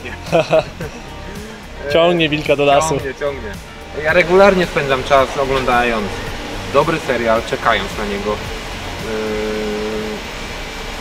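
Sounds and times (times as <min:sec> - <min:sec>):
man's drawn-out hesitation sound: 0:01.4 - 0:08.3.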